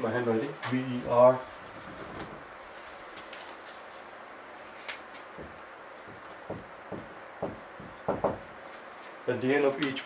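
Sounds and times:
marker pen writing on whiteboard: 5.4s - 8.5s.

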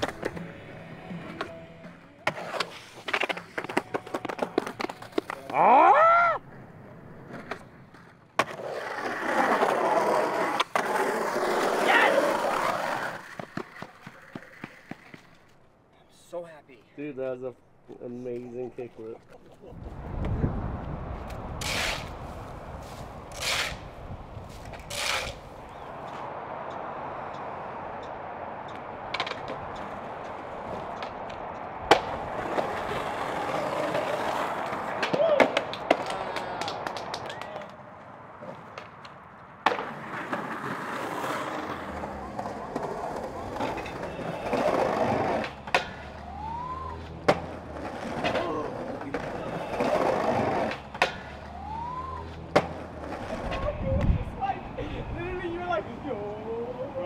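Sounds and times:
skateboard popping and slapping down: 0.0s - 0.5s, 2.2s - 5.7s, 7.2s - 15.5s, 29.1s - 30.0s, 38.4s - 46.2s, 47.2s - 51.4s, 52.5s - 54.1s
skateboard wheels rolling on concrete: 0.0s - 57.0s.

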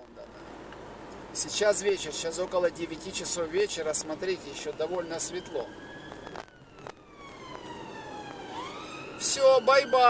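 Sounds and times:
emergency siren wailing: 4.3s - 10.0s.

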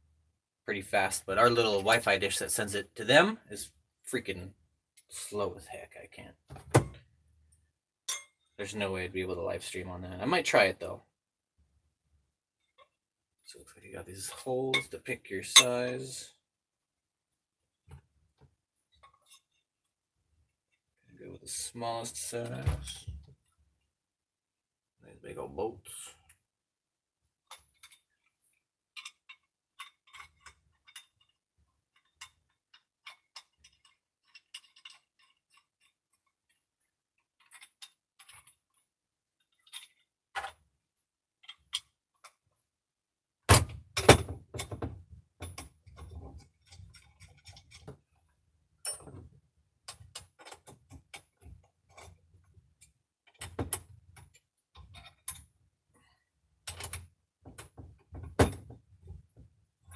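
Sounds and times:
metal parts clicking and clinking: 29.0s - 36.6s, 37.2s - 40.6s, 41.4s - 42.4s, 45.4s - 48.0s, 52.8s - 55.5s, 56.6s - 58.5s.

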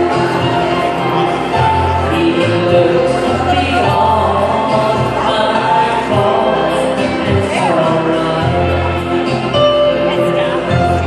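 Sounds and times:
keyboard accompaniment: 0.0s - 11.0s.

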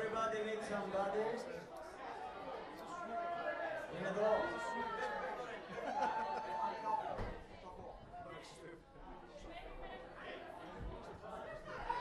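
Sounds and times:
people chattering: 0.0s - 12.0s.

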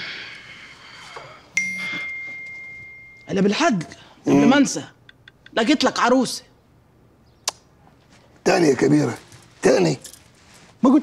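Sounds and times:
high bell ding: 1.6s - 3.6s.

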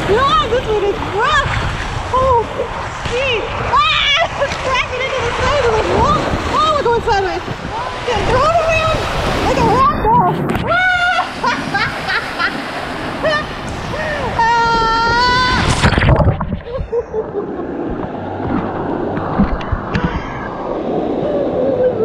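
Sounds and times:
water rushing and splashing: 0.0s - 22.0s.

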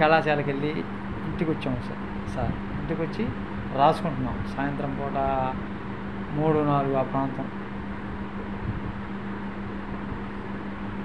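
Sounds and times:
background hum and hiss: 0.0s - 11.0s
constant low tone: 0.0s - 11.0s.

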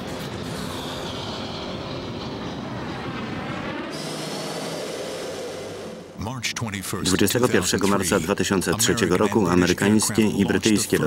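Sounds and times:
jet engine noise: 0.0s - 11.0s.

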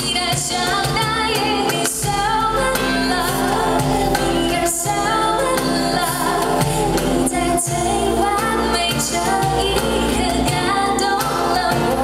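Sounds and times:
live pop band with keyboard and drums: 0.0s - 12.0s
woman singing: 0.0s - 12.0s.

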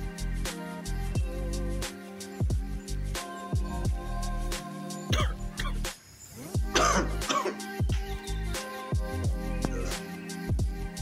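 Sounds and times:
music with deep sliding bass: 0.0s - 1.9s, 2.5s - 5.9s, 6.5s - 11.0s.

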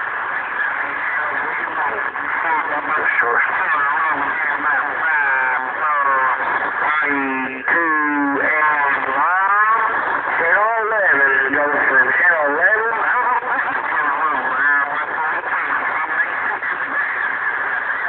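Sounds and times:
distorted warbling radio transmission: 0.0s - 18.0s.

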